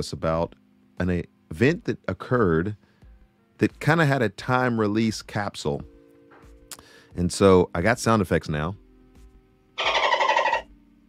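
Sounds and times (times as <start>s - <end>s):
dolphin chattering: 9.8s - 10.6s.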